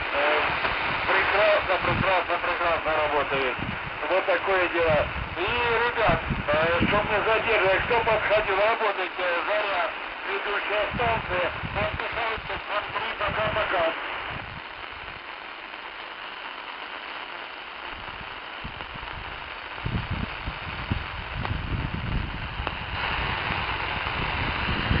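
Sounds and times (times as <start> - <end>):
voice over radio: 0.0 - 14.3
radio static hiss: 0.0 - 25.0.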